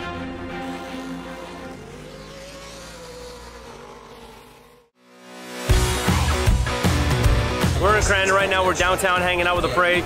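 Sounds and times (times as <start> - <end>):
background music: 0.0 - 2.2, 5.0 - 10.0
race truck engine running hard: 0.0 - 5.0.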